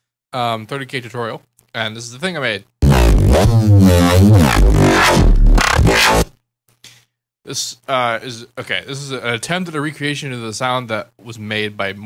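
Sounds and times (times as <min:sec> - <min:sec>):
deep synth bass sweeping: 0:02.8 - 0:06.3.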